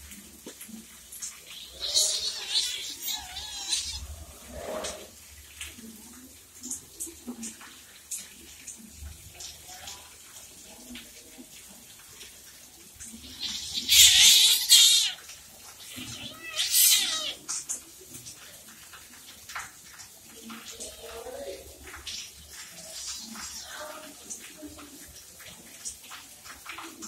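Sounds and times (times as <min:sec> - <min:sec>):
kitten hissing: 0:01.5 - 0:05.1, 0:13.2 - 0:15.2, 0:15.8 - 0:17.5
kitten growl: 0:01.7 - 0:05.0, 0:15.9 - 0:17.4.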